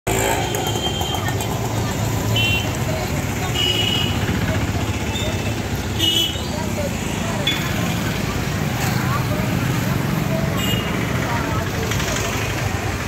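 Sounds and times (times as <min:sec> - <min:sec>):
traffic noise: 0:00.0 - 0:13.0
people's voices: 0:00.1 - 0:13.0.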